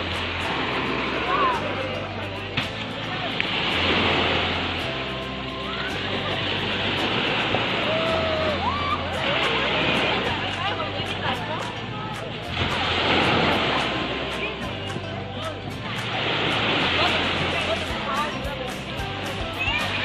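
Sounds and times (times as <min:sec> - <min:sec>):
background music with bass line: 0:00.0 - 0:20.0
small waves breaking on shore: 0:00.0 - 0:20.0.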